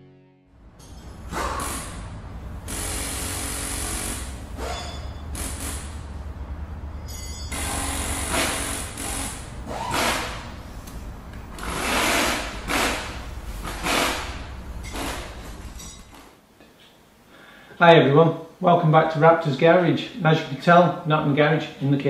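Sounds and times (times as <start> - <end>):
low drone: 0.0 - 16.1
short rushing noise bursts: 7.5 - 15.8.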